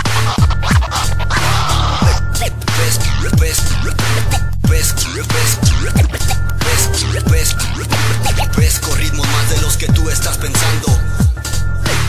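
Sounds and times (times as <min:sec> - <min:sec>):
hip-hop bass beat: 0:00.0 - 0:12.0
turntable scratching: 0:00.0 - 0:12.0.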